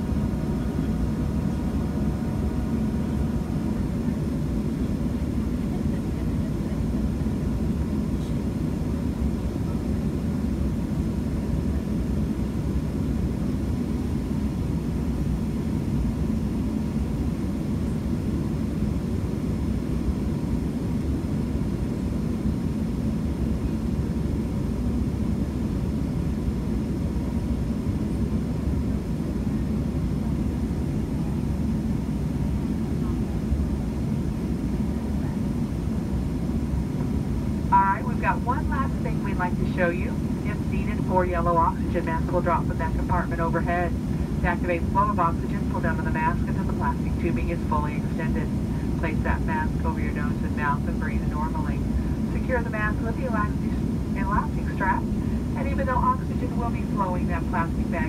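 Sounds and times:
aircraft cabin hum: 0.0 - 58.0.

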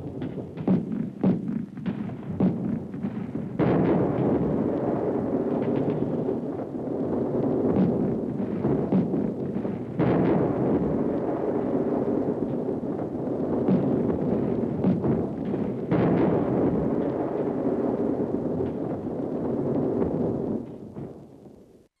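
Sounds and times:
explosions and gunfire rumble: 0.0 - 21.8.

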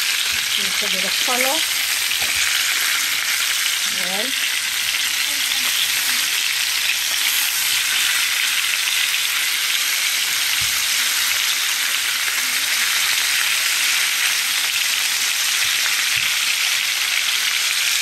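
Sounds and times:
chicken sizzling in oil: 0.0 - 18.0.

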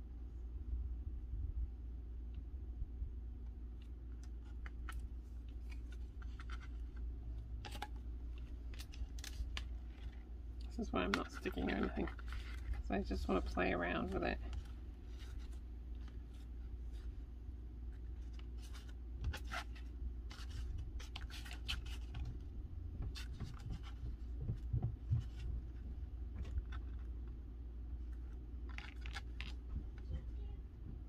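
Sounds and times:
steady low hum: 0.0 - 31.0
paper rustles: 4.4 - 7.0, 7.6 - 17.2, 17.9 - 24.4, 28.0 - 30.3.

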